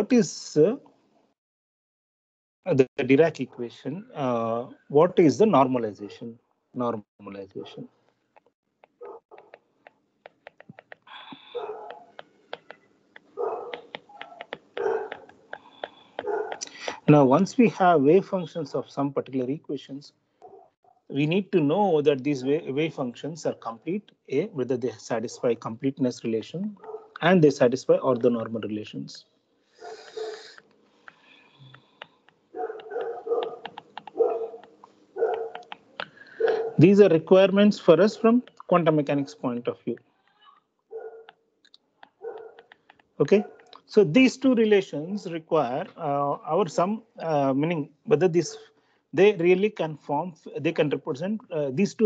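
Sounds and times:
dog barking or whining: 11.6 - 12.1, 13.3 - 15.3, 16.2 - 16.6, 32.6 - 35.6, 36.4 - 36.8.

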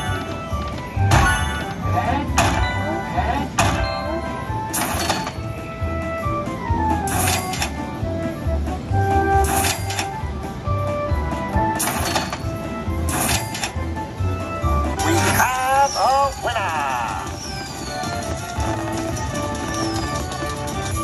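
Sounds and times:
slot machine sound effects: 0.0 - 6.2, 6.9 - 8.0, 9.2 - 10.3, 11.6 - 14.1, 14.7 - 21.0
slot machine music: 0.0 - 21.0.

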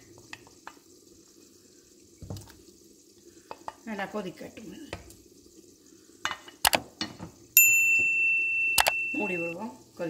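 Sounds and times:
bright bell ding: 7.6 - 9.6
mouse clicks: 8.8 - 9.0.

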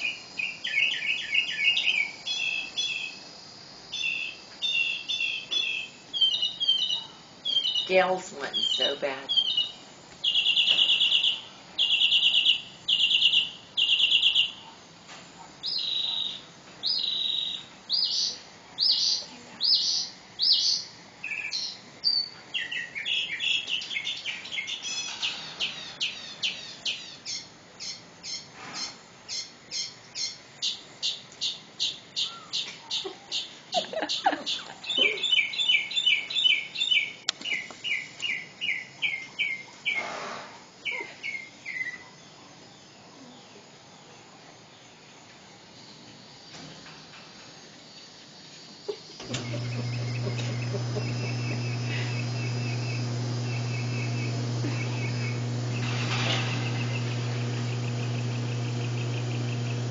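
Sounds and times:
birds calling: 3.9 - 14.6, 31.1 - 40.0, 49.1 - 59.9
high bird chirps: 8.6 - 14.6.

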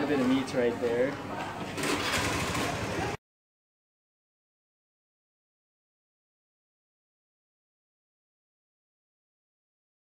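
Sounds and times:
street noise: 0.0 - 3.2.

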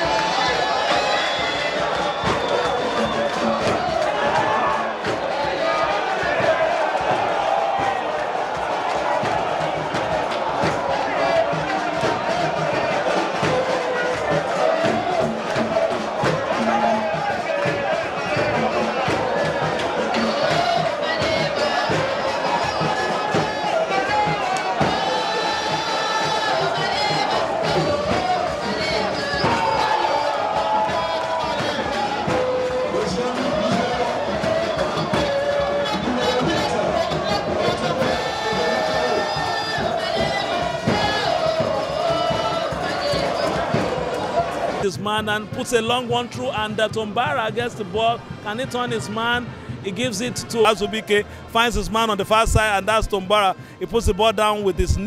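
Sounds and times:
crowd chanting and cheering: 0.0 - 55.0
music: 0.0 - 55.0.

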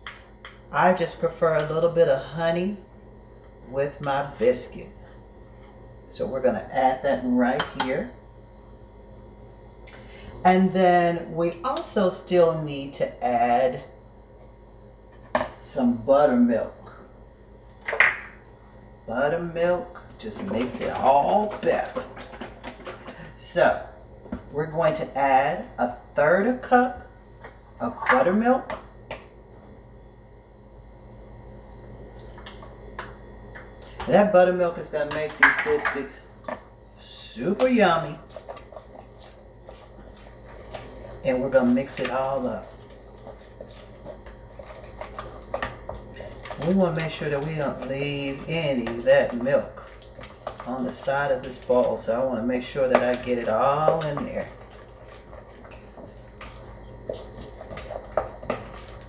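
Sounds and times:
low steady hum: 0.0 - 59.0
wet stirring: 19.5 - 23.4, 32.1 - 59.0.

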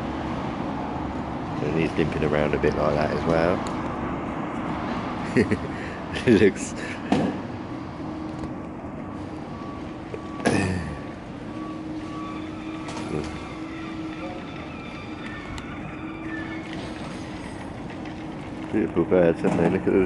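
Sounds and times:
engine humming: 0.0 - 20.0
street background noise: 0.0 - 20.0.

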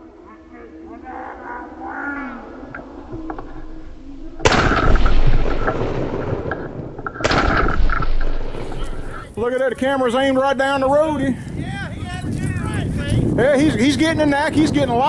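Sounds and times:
shotgun blasts with echo: 4.4 - 9.1.

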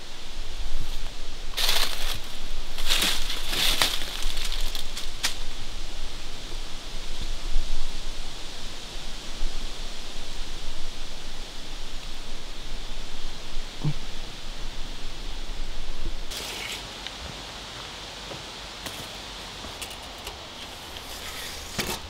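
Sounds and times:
rustling leaves: 0.0 - 22.0
wind: 0.0 - 22.0.

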